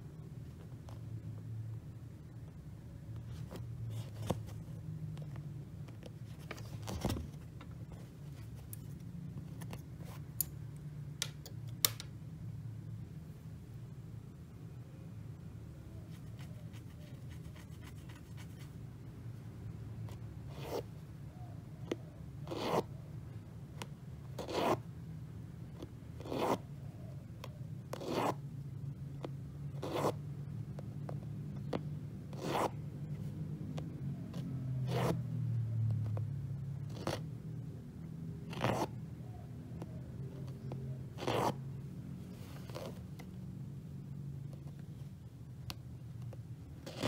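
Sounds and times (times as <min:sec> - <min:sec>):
low steady hum: 0:00.0 - 0:47.0.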